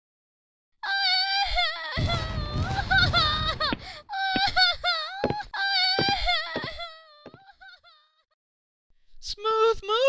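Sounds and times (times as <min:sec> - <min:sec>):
cartoon voice wailing and sobbing: 0:00.8 - 0:07.9.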